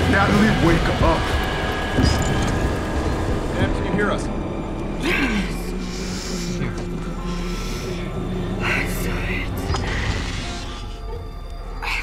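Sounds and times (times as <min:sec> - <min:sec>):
low droning film score: 0:00.0 - 0:12.0
breathy hisses: 0:05.2 - 0:11.2.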